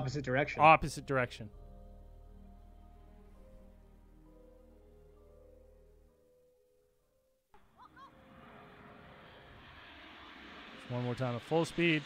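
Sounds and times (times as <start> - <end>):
jet aircraft rushing overhead: 7.8 - 12.0.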